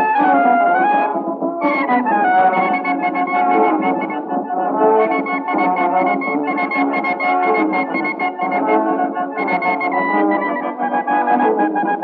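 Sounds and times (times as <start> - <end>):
wind band playing a march: 0.0 - 12.0.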